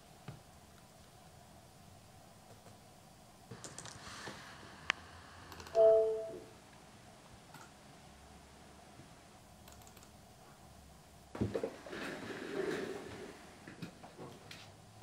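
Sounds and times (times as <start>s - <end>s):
typing on laptop keyboard: 3.5s - 4.0s, 9.6s - 10.1s
two-note tone: 5.8s - 6.4s.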